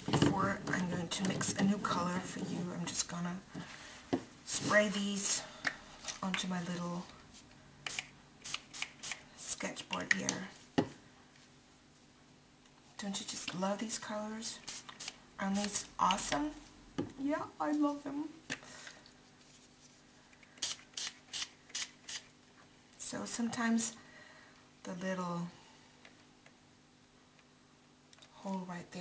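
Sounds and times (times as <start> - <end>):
spray bottle misting: 14.6 - 15.8
spray bottle spritzes: 20.6 - 22.3.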